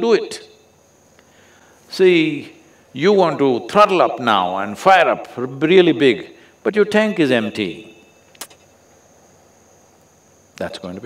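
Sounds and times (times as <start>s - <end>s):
faint background noise: 0.0s - 11.0s
steady high-pitched whine: 0.0s - 11.0s.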